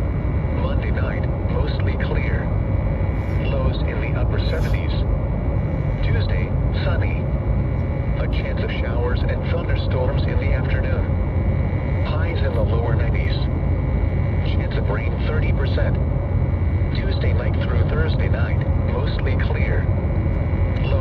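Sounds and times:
low rumble: 0.0s - 21.0s
synthesized radio voice: 0.6s - 2.5s, 3.2s - 5.1s, 5.9s - 7.3s, 8.1s - 11.1s, 12.0s - 13.5s, 14.4s - 16.1s, 16.9s - 19.9s, 20.7s - 21.0s.

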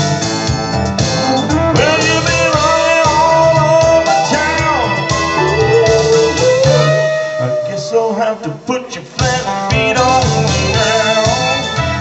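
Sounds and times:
drums: 0.0s - 8.0s, 8.6s - 12.0s
electric guitar bent notes: 0.0s - 11.0s
bass: 0.0s - 12.0s.

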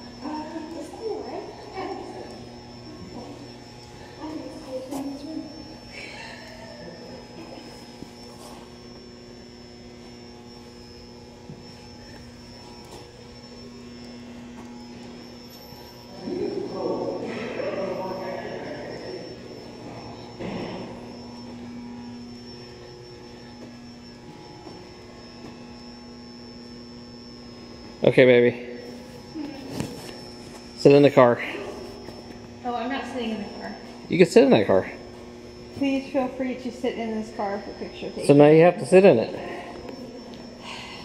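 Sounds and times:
indoor hall hum: 0.0s - 41.0s
thin high whine: 0.0s - 41.0s
indistinct voices: 15.8s - 21.7s.

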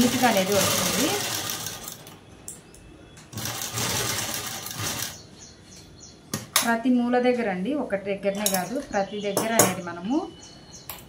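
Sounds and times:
sewing machine stitching: 0.0s - 2.1s, 3.3s - 5.2s.

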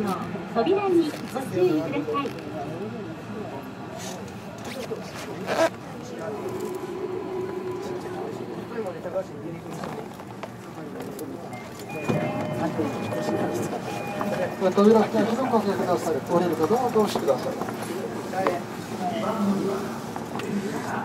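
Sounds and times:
passengers talking: 0.0s - 21.0s
station background noise: 0.0s - 21.0s
steady electronic tones: 6.2s - 9.7s.

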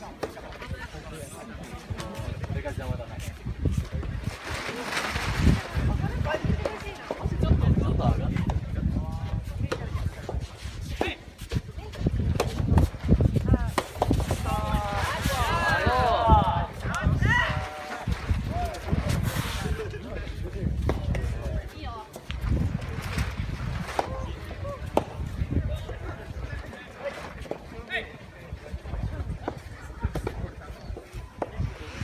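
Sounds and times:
wind rumble on microphone: 0.0s - 32.0s.

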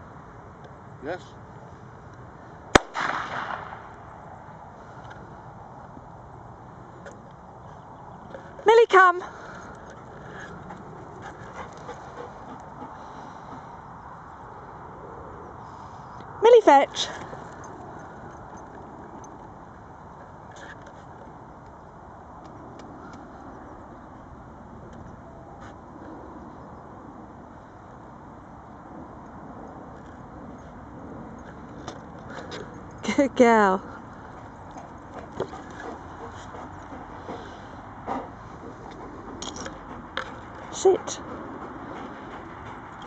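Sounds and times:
even outdoor rumble: 0.0s - 43.0s
dummy launcher firing bang: 2.8s - 3.8s.

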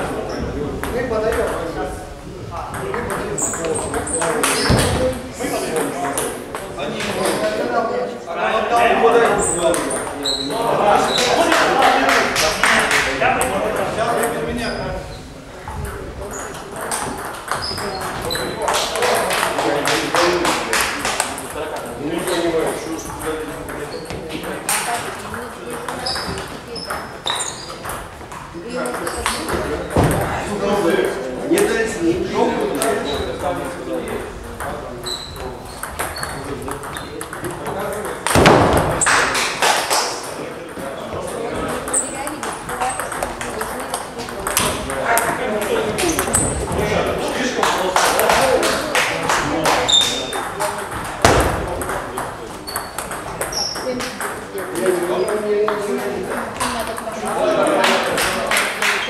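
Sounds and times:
ball bouncing on table: 2.7s - 5.2s, 16.8s - 18.8s, 23.1s - 30.4s, 34.1s - 39.6s, 40.7s - 46.8s, 49.8s - 57.1s
table tennis ball hitting bats: 2.7s - 5.2s, 15.8s - 21.6s, 23.0s - 30.4s, 34.1s - 46.9s, 47.6s - 57.4s.

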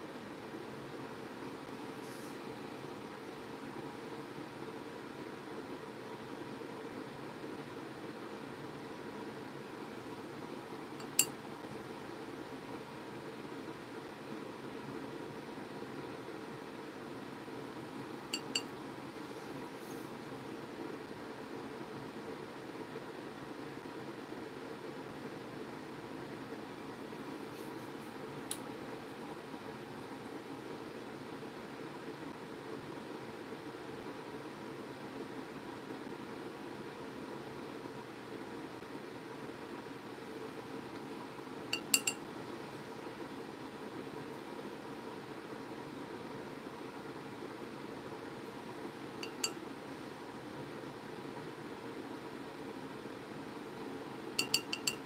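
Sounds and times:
room hum: 0.0s - 55.0s
paintbrush clinking on palette: 11.0s - 11.3s, 18.4s - 18.7s, 41.8s - 42.2s, 49.2s - 49.6s, 54.4s - 55.0s.

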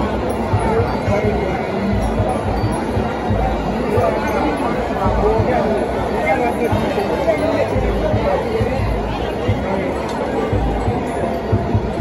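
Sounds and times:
stadium crowd babble: 0.0s - 12.0s.

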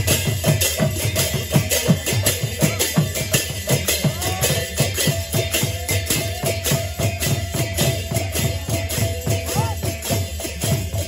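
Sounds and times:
hand cymbals clashing: 0.0s - 11.0s.

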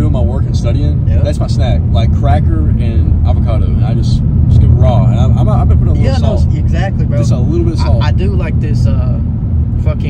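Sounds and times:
car driving heard from inside: 0.0s - 10.0s
conversation: 0.0s - 10.0s.

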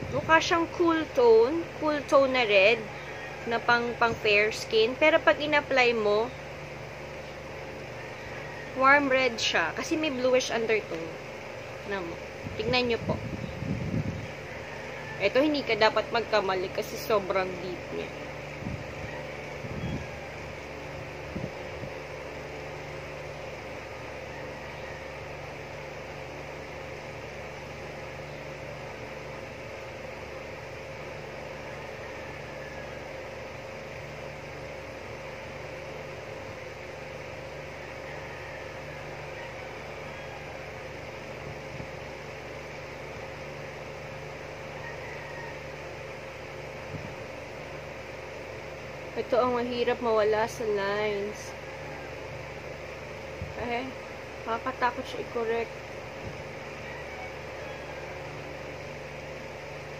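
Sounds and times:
fan humming and hissing: 0.0s - 59.9s.

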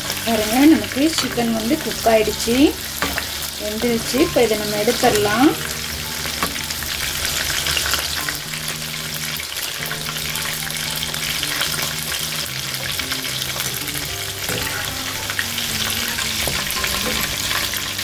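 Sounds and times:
chicken deep-frying in oil: 0.0s - 18.0s
skimmer stirring frying pieces: 0.0s - 18.0s.

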